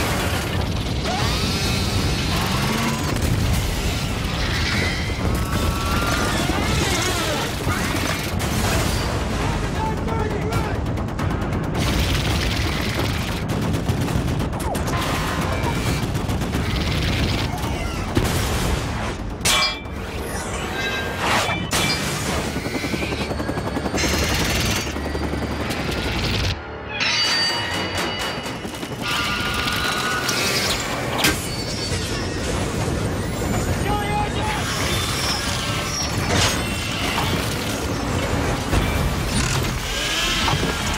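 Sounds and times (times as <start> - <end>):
helicopter rotor and engine rumbling: 0.0 - 18.3, 19.1 - 40.9
rumble of explosions: 0.0 - 20.6
action music: 7.2 - 30.0.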